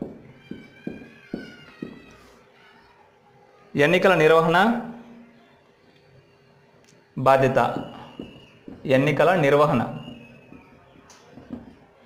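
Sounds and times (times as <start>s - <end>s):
marker tapping on whiteboard: 0.0s - 2.2s, 7.7s - 8.9s, 10.0s - 11.8s
marker tip squeak: 9.9s - 11.3s.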